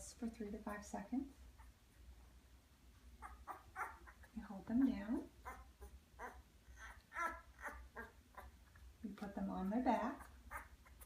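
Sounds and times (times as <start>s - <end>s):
puppy squeaking: 3.2s - 4.4s, 5.4s - 8.6s, 9.9s - 11.0s.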